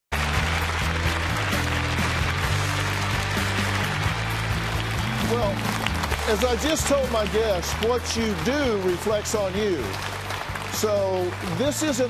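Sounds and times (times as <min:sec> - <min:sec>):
audience applause: 0:00.1 - 0:12.0
theme music with bass line: 0:00.1 - 0:12.0.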